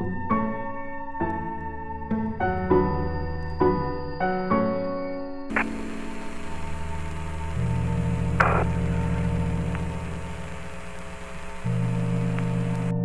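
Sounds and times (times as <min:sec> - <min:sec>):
low sustained music tones: 0:00.0 - 0:13.0
radio crackle: 0:05.5 - 0:13.0
radio static hiss and hum: 0:05.5 - 0:13.0.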